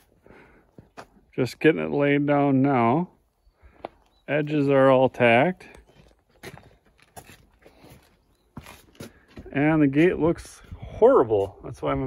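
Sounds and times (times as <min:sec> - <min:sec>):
faint footsteps: 0:00.0 - 0:01.3, 0:03.6 - 0:05.0, 0:05.6 - 0:11.8.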